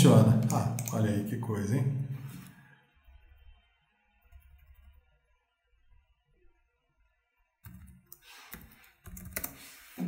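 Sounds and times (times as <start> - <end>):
keystrokes on computer keyboard: 0.4 - 1.0, 7.6 - 9.6.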